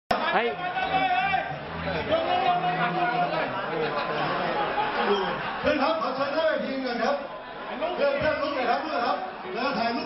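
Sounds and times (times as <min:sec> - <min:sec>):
crowd chatter: 0:00.1 - 0:10.0
man speaking into a microphone: 0:05.4 - 0:10.0.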